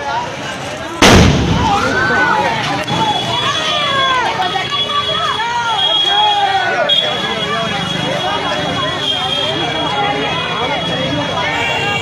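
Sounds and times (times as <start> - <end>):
gas cylinder explosion: 1.0 - 2.4
people shouting: 1.5 - 8.6.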